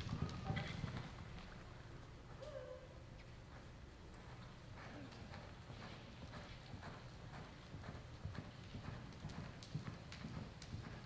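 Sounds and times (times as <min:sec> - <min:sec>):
horse hoofbeats on soft dirt: 0:00.0 - 0:02.4, 0:03.2 - 0:11.0.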